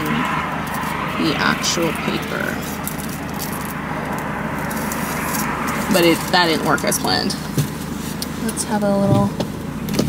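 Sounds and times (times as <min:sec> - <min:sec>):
car idling hum inside cabin: 0:00.4 - 0:10.0.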